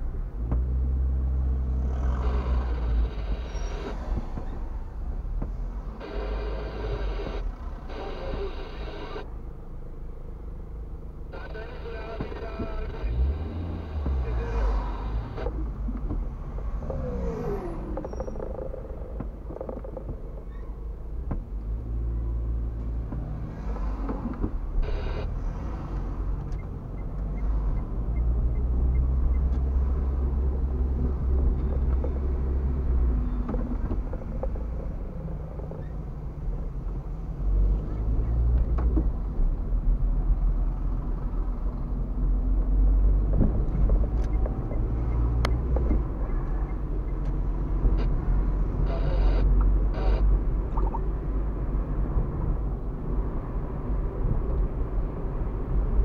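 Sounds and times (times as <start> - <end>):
car engine and road rumble: 0.0 - 56.0
steady pitched tone: 48.8 - 50.3.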